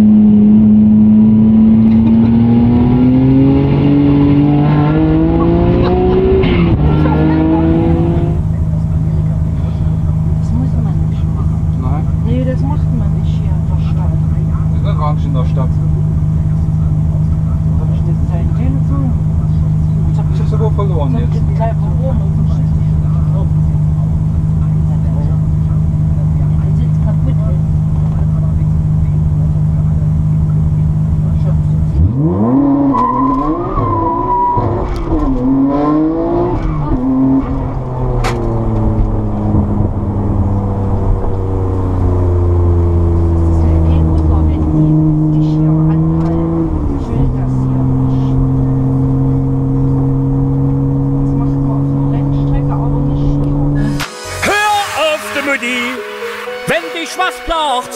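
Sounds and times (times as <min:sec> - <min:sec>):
car engine revving through gears: 0:00.0 - 0:57.0.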